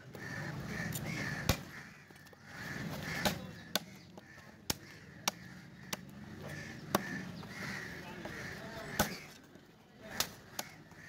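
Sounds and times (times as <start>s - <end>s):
crows cawing: 0.0s - 9.4s, 10.0s - 11.0s.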